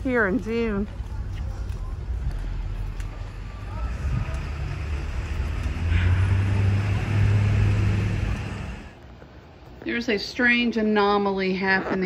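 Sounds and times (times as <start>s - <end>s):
car driving past: 1.2s - 9.0s.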